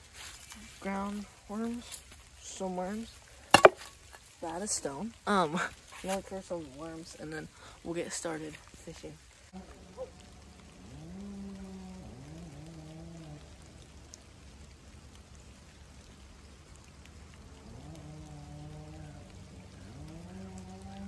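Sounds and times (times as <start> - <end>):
steady rain falling: 0.0 - 21.0.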